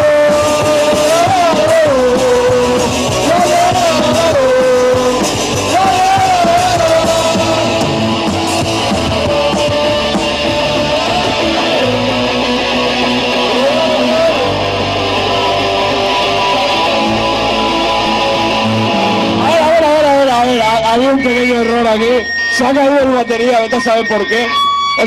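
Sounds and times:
person singing long bending notes: 0:00.0 - 0:19.8
electric guitars: 0:00.0 - 0:25.0
punk rock band playing live: 0:00.0 - 0:25.0.

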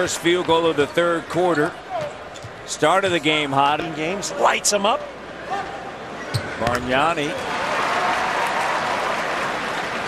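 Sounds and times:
crowd applauding: 0:07.4 - 0:10.0.

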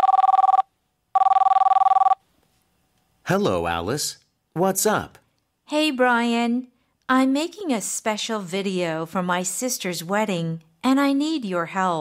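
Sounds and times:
cellphone ringing with two-tone trill: 0:00.0 - 0:02.2.

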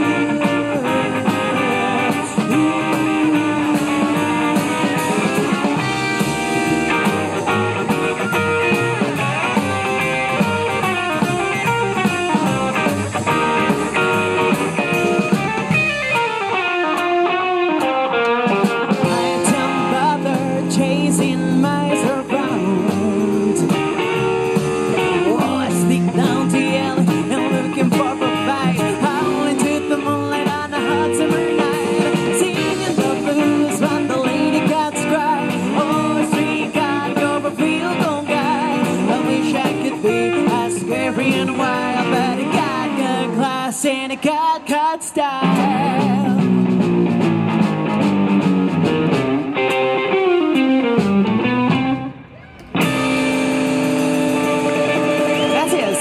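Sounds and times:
electric guitar: 0:00.0 - 0:56.0
live blues band playing: 0:00.0 - 0:56.0.

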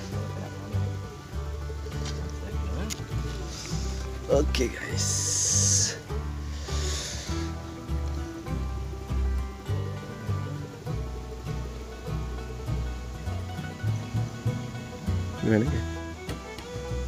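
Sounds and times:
brief hiss: 0:03.4 - 0:04.2, 0:05.3 - 0:07.7.

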